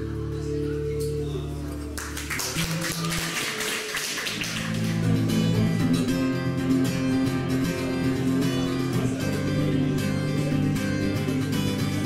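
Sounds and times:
acoustic guitars strumming: 0.0 - 12.0.

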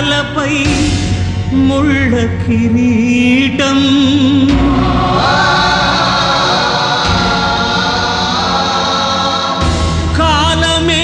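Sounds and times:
heavy bass: 0.0 - 11.0
orchestral music: 3.6 - 11.0
choir singing sustained notes: 4.4 - 10.6.

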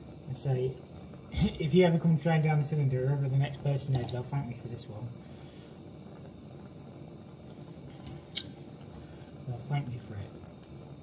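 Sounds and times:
blowtorch flame hissing: 0.0 - 11.0.

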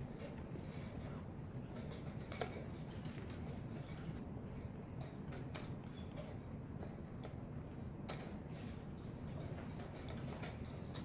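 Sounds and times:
low hall hum: 0.0 - 11.0.

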